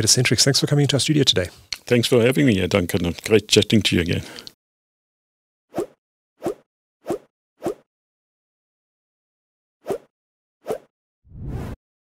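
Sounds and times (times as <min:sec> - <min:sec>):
brief whoosh: 0:11.3 - 0:11.8.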